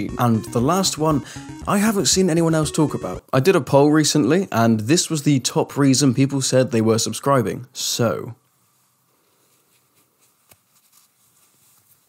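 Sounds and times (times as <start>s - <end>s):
faint rustles: 8.6s - 12.0s.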